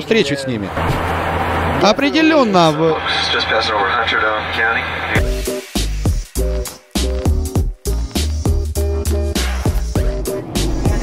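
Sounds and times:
man talking: 1.8s - 5.2s.

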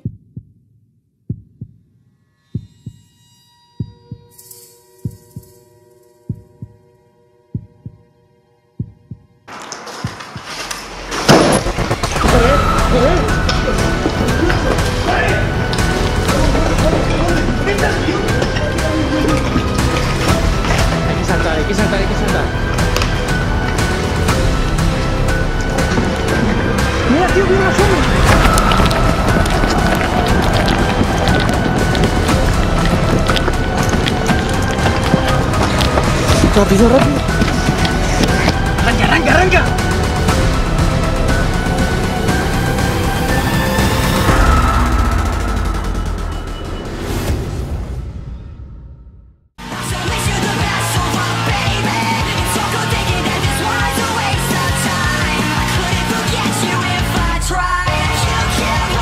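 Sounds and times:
heartbeat thumps: 0.0s - 1.9s, 2.5s - 3.0s, 6.3s - 6.9s, 7.5s - 8.1s, 8.8s - 10.2s, 27.9s - 41.2s
background music drone: 12.0s - 47.4s
running footsteps crunching: 27.6s - 39.0s.

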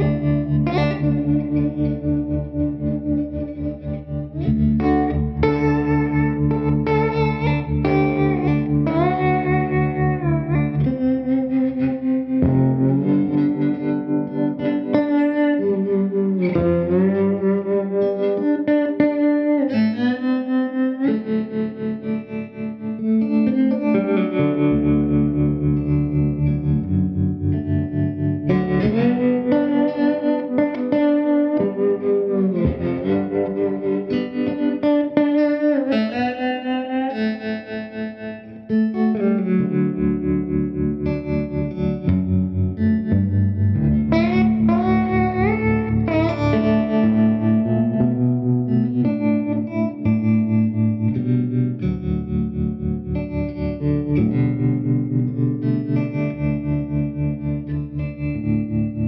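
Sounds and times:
electric slide guitar playing blues: 0.0s - 59.0s.

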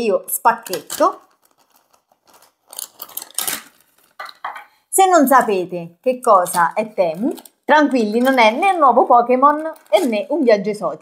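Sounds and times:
plastic crinkling: 0.4s - 4.6s, 6.3s - 10.7s
knife slitting plastic bag: 0.7s - 4.2s, 9.4s - 10.4s.

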